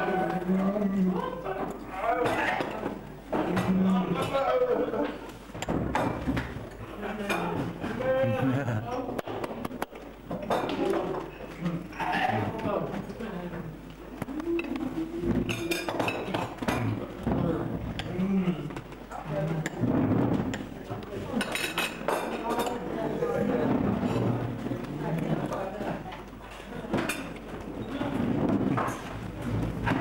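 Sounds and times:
indistinct chatter: 6.7s - 30.0s
crockery and cutlery clinking: 21.3s - 22.9s.

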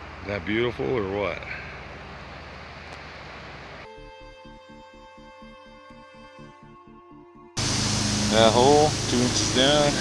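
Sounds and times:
music with sustained tones and beat: 3.9s - 10.0s
river rushing over rocks: 7.6s - 10.0s.

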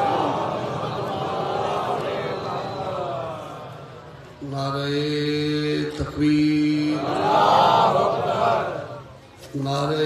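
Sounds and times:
man chanting into microphone: 4.4s - 7.2s.

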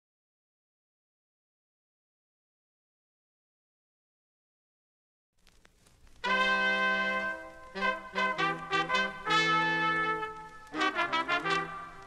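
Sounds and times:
horns playing chords: 6.2s - 12.0s.

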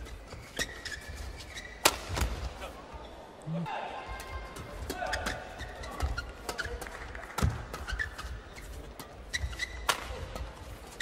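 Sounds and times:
shoe squeaks: 0.0s - 1.8s, 4.9s - 6.8s, 7.4s - 11.0s.

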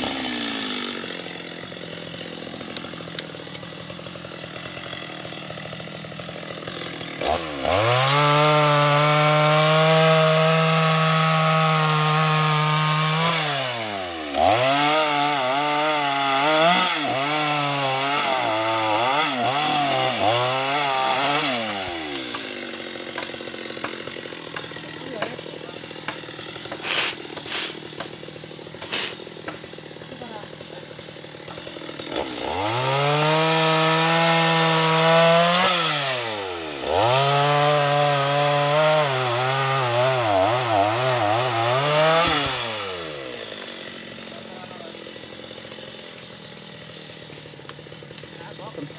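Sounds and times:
chainsaw cutting wood: 0.0s - 48.9s.

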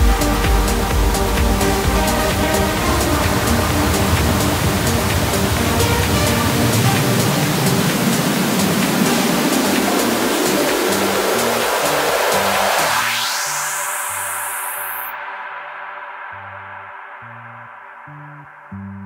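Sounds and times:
melodic techno: 0.0s - 19.0s
rising filtered white noise: 0.0s - 19.0s.

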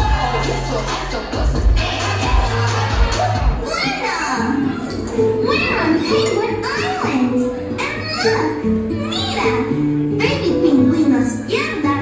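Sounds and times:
heavy bass beat: 0.0s - 3.6s
backing music: 0.0s - 12.0s
cartoon child's voice speaking: 5.4s - 12.0s.

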